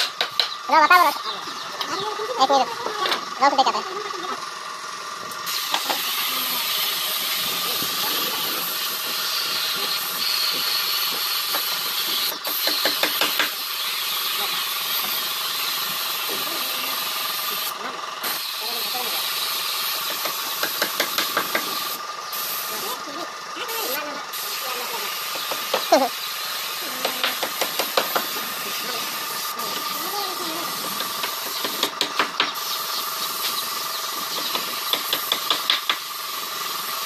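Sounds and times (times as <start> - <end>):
spray gun hissing: 5.4 - 32.0, 32.6 - 37.0.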